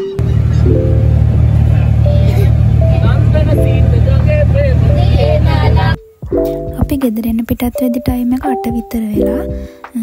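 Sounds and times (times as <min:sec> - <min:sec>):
loud low rumble: 0:00.2 - 0:06.0
people talking: 0:01.3 - 0:06.0, 0:06.7 - 0:10.0.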